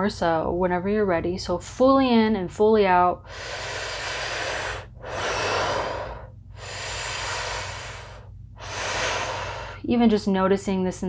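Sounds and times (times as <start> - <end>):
woman breathing deeply: 3.2 - 9.9.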